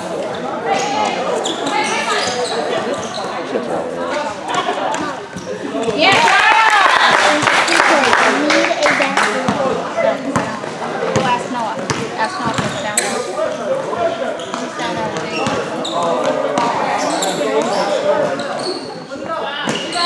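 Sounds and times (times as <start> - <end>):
voices of players and onlookers: 0.0 - 20.0
basketball bouncing on gym floor: 9.5 - 12.9, 14.6 - 15.6.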